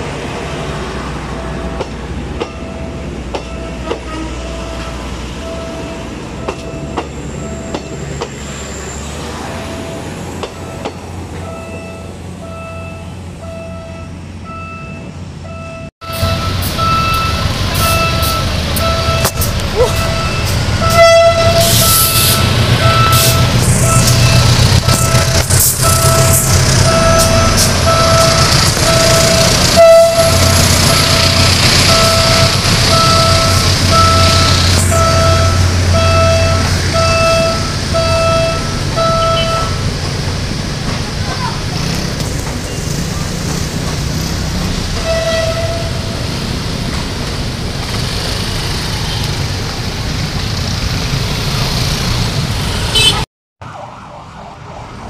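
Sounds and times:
diesel train rumble: 0.0s - 53.2s
train coaches rumbling past: 0.0s - 53.2s
crossing warning bell: 0.1s - 8.6s, 9.6s - 40.4s.

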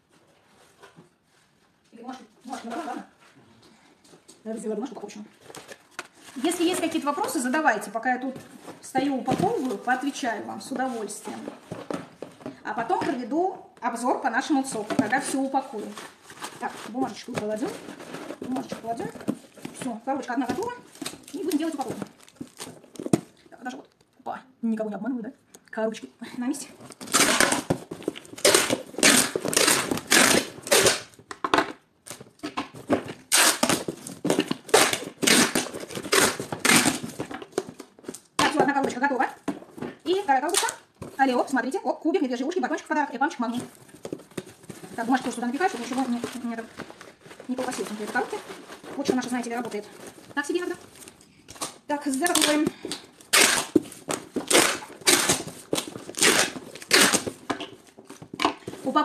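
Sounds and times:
packing tape pulled off roll: 26.9s - 31.2s, 33.2s - 37.6s, 51.0s - 57.9s.

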